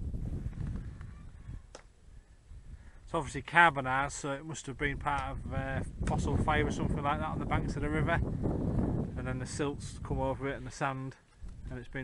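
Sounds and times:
low wind rumble: 0.0 - 12.0.

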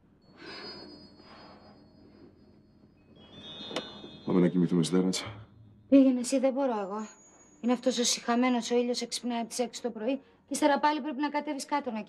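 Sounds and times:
thin high-pitched tones: 0.4 - 8.6.

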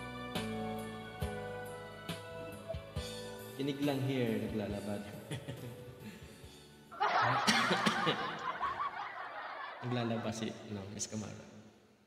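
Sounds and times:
faint music: 0.0 - 11.6
burst of laughter: 7.0 - 10.2.

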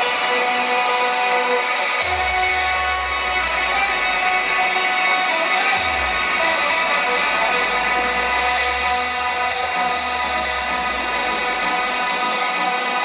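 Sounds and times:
low bass drone: 5.8 - 12.4.

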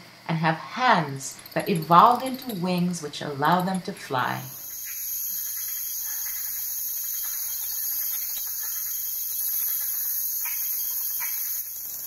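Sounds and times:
bats squeaking in chorus: 1.0 - 12.0.

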